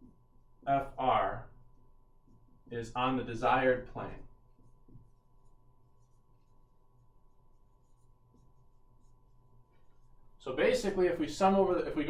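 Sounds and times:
low steady hum: 0.0s - 12.0s
marker writing on whiteboard: 1.6s - 10.4s.

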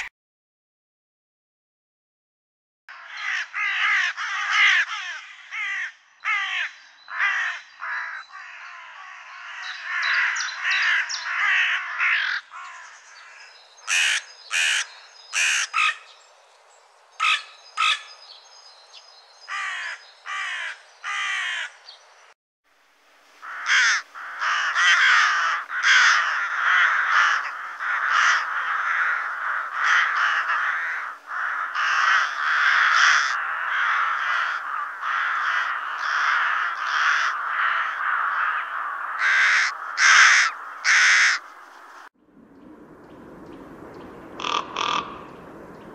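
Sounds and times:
crows cawing: 2.9s - 16.1s, 17.2s - 18.1s, 19.5s - 21.8s, 23.4s - 42.1s, 44.4s - 45.4s
rooks cawing in chorus: 2.9s - 16.1s, 17.2s - 18.1s, 19.5s - 21.8s, 23.4s - 42.1s, 44.3s - 45.6s.

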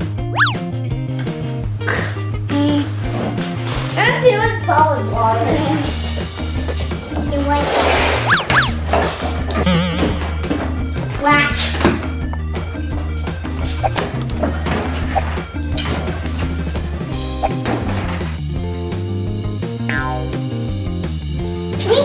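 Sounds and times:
background music with beat: 8.2s - 21.7s.

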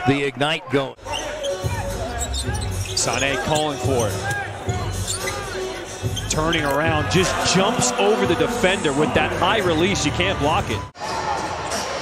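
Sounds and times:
arena music: 1.0s - 12.0s.

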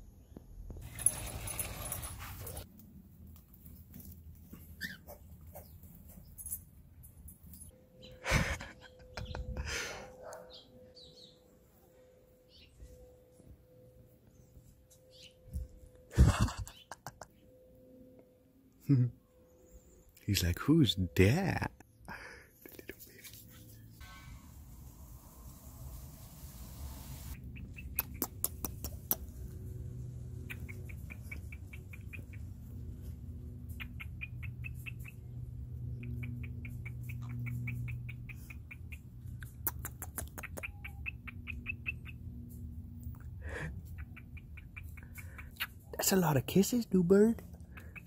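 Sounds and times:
sharp clicks: 27.8s - 29.4s, 36.0s - 40.8s.

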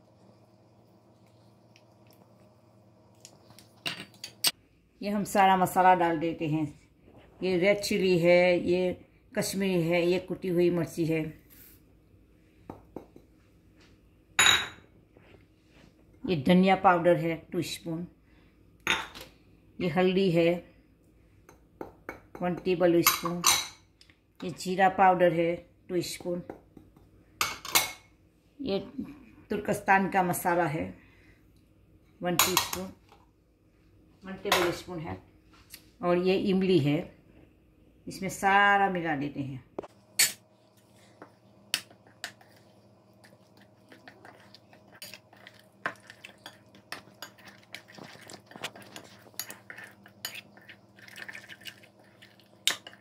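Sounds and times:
metal spoon stirring thick paste: 41.2s - 53.0s
spoon clinking and scraping bowl: 41.2s - 53.0s.

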